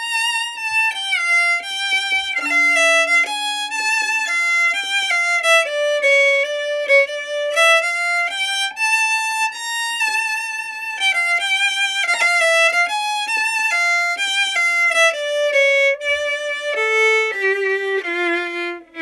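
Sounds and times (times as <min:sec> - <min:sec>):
solo violin melody: 0:00.0 - 0:19.0.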